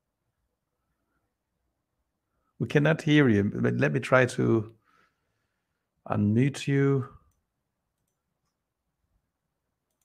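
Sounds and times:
man speaking: 2.6s - 4.8s, 6.0s - 7.3s
very faint clicks: 7.3s - 8.6s.

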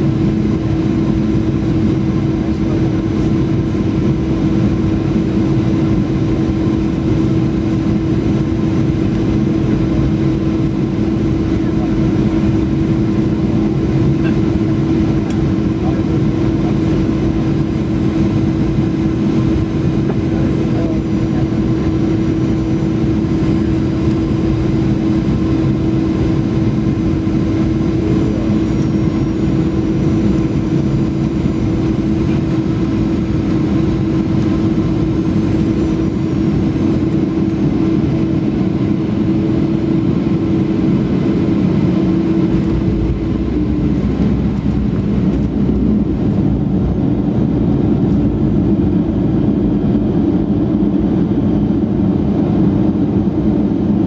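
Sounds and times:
airliner rolling on runway: 0.0s - 54.0s
jet engines humming: 0.0s - 54.0s.

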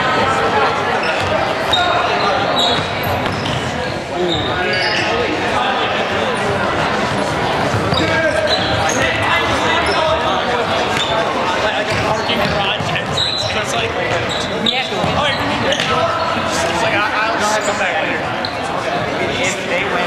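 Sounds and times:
players calling out: 0.0s - 20.0s
sneakers squeaking: 0.8s - 5.3s, 6.4s - 16.6s, 17.6s - 18.8s.

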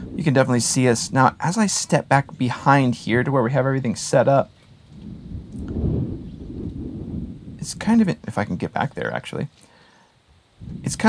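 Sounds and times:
wind buffeting microphone: 0.0s - 8.8s, 10.4s - 11.0s.

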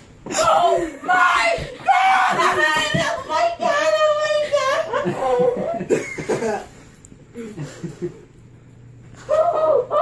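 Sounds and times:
high-pitched crying: 9.3s - 10.0s.

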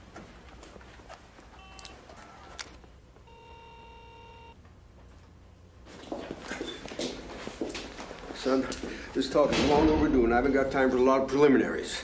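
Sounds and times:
electronic buzzer tone: 1.6s - 2.6s, 3.2s - 4.6s.

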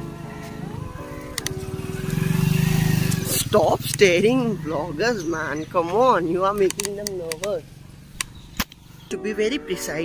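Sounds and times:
motorcycle engine running: 0.0s - 9.2s
phone clicks: 6.6s - 7.6s.

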